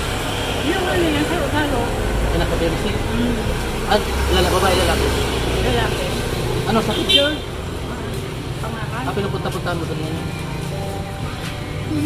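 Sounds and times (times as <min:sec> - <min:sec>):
indistinct talking: 0:00.0 - 0:12.0
vehicle engine passing: 0:00.0 - 0:12.0.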